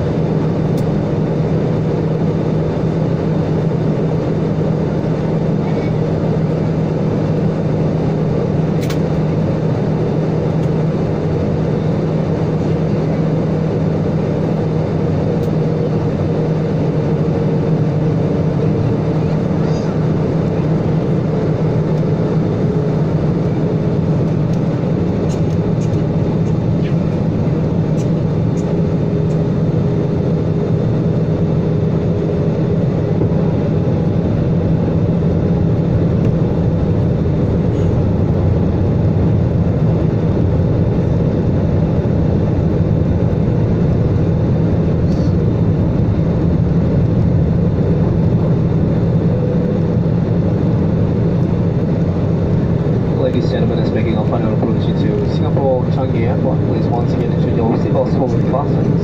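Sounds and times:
airliner engine hum: 0.0s - 59.0s.

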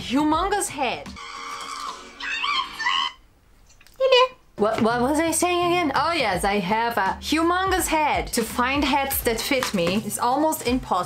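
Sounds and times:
dog whining: 1.4s - 3.3s.

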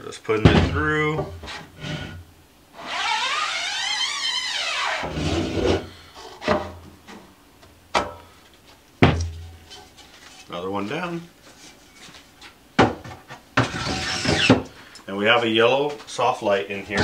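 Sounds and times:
squeaky rubbing scrape: 2.8s - 6.4s, 13.6s - 14.6s.

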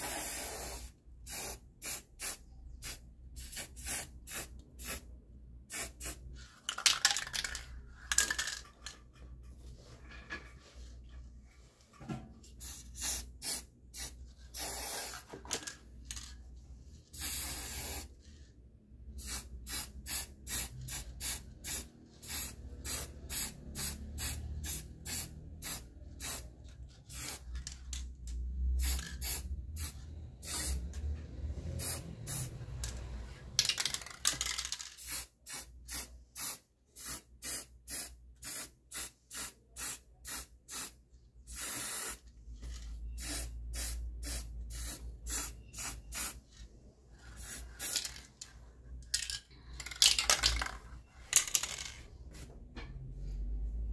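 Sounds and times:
aerosol spray can hissing: 12.6s - 15.2s.

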